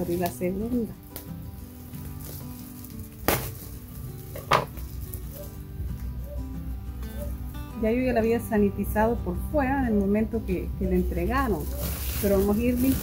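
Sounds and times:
plastic bag crinkling: 0.0s - 5.5s, 11.3s - 13.0s
soft background music: 0.0s - 13.0s.

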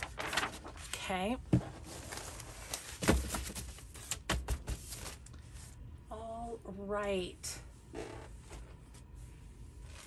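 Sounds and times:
paper rustling: 0.0s - 1.0s.

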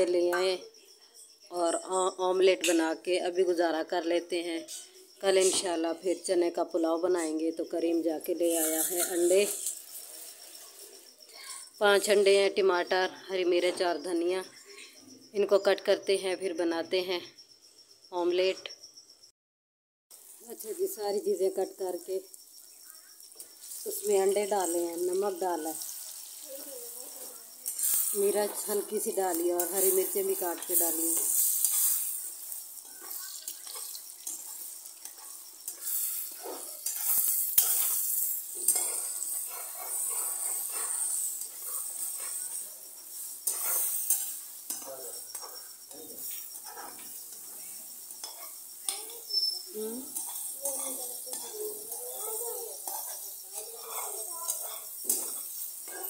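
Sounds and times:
indistinct voices talking: 0.0s - 17.4s, 20.4s - 37.4s, 44.4s - 56.0s
eggs sizzling in a frying pan: 1.3s - 18.1s, 20.1s - 56.0s
metal spatula stirring: 8.5s - 11.0s, 22.9s - 56.0s.

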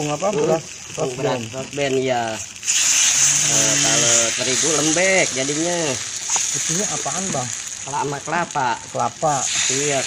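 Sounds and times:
batter sizzling: 0.0s - 10.0s.

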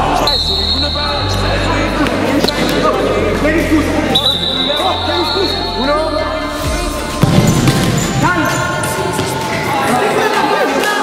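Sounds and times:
ball thuds: 7.2s - 8.1s.

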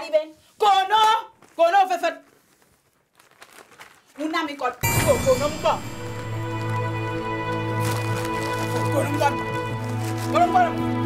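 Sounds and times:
paper rustling and crinkling: 0.9s - 4.8s, 6.4s - 11.0s.

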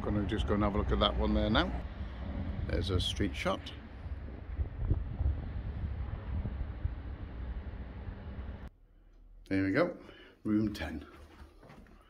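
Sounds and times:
wind buffeting microphone: 0.0s - 8.7s.

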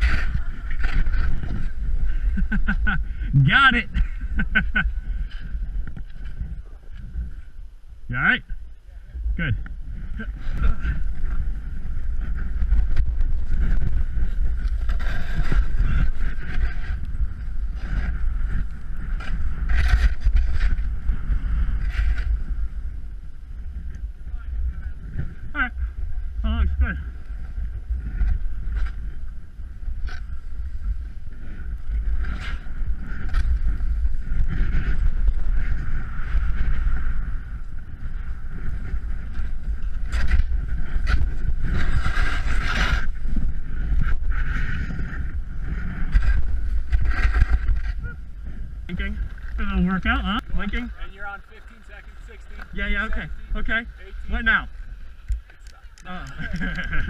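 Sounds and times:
wind buffeting microphone: 0.0s - 57.0s
snowboard scraping through snow: 10.4s - 22.7s, 27.1s - 49.8s.

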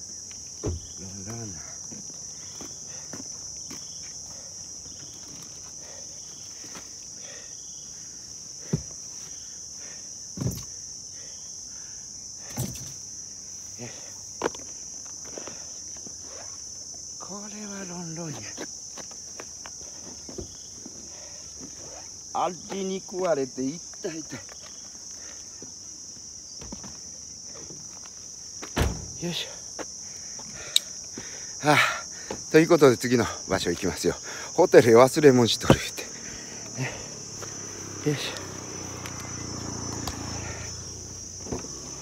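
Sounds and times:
insects droning: 0.0s - 42.0s
short thump: 0.6s - 1.0s, 28.6s - 29.2s.

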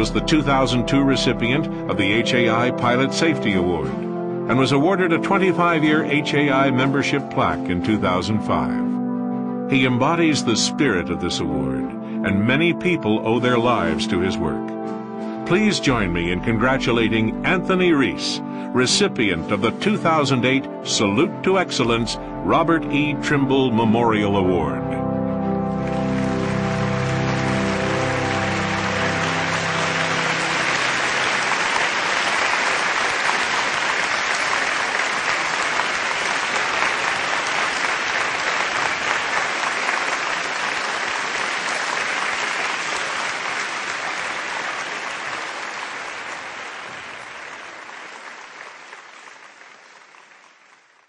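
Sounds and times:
music: 0.0s - 49.3s
audience applauding: 25.7s - 51.0s.

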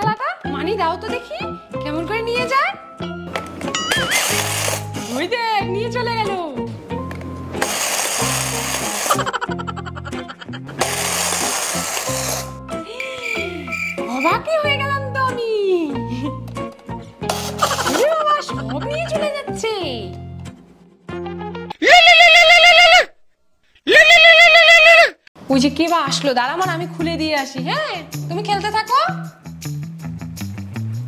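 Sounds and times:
electronic doorbell chime: 3.7s - 4.2s
toy mechanism whirring rattle: 3.9s - 5.2s, 7.6s - 9.4s, 10.7s - 12.6s.

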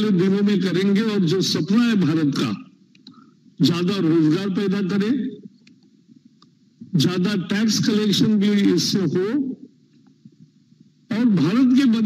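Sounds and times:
man speaking: 0.0s - 2.7s, 3.6s - 5.5s, 6.9s - 9.7s, 11.1s - 12.0s
faint low hum: 0.0s - 12.0s.

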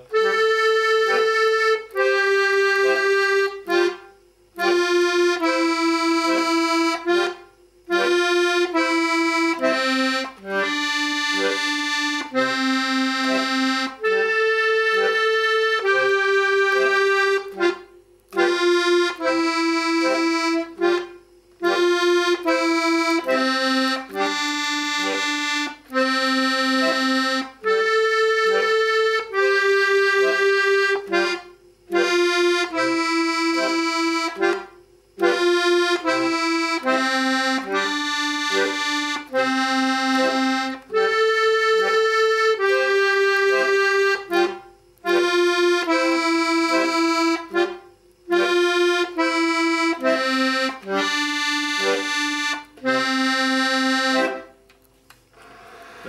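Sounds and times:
accordion playing a dance tune: 0.0s - 54.7s.

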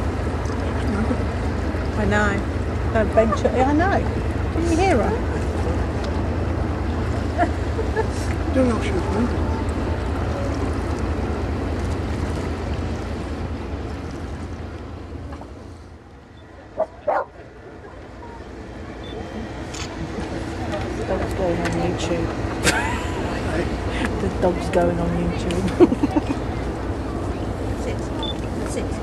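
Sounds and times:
distant people chattering: 0.0s - 29.0s.

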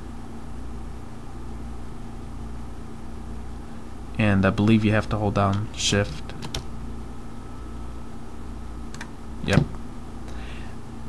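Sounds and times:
low electrical hum: 0.0s - 11.0s
microphone hiss: 0.0s - 11.0s.

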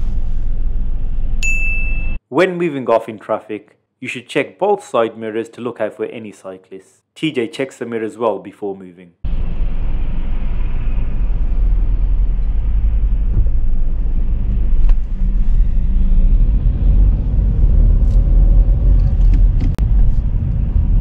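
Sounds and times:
car engine and road rumble: 0.0s - 1.4s, 9.3s - 21.0s.

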